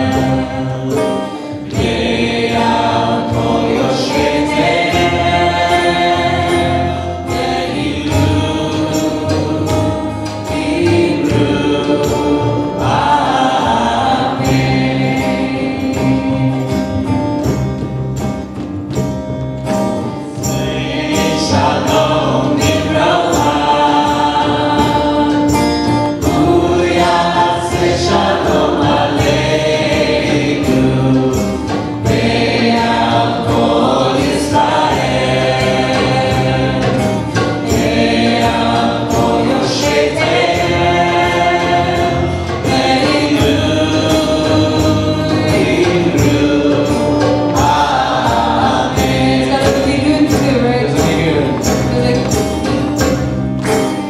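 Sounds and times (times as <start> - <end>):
congregation singing: 0.0 - 19.0, 19.6 - 54.0
strummed acoustic guitar: 0.0 - 54.0.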